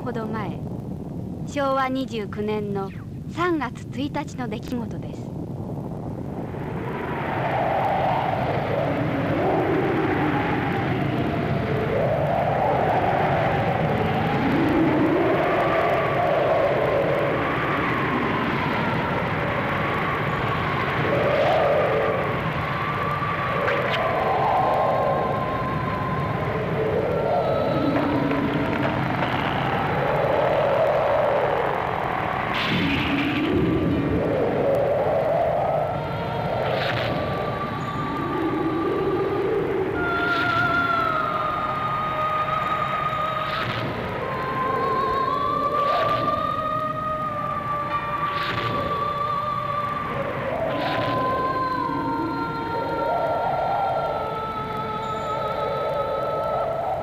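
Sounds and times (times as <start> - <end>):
deep explosion roar: 5.0 - 41.8.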